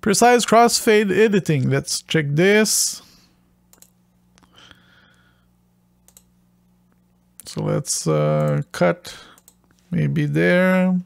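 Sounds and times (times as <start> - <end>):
low steady hum: 0.0 - 11.0
computer mouse clicks: 3.7 - 4.5, 6.0 - 6.3, 9.3 - 9.8.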